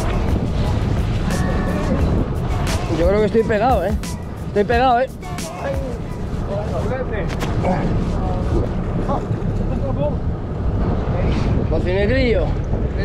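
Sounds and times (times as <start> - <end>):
faint voices: 0.0 - 13.0
wind buffeting microphone: 0.0 - 13.0.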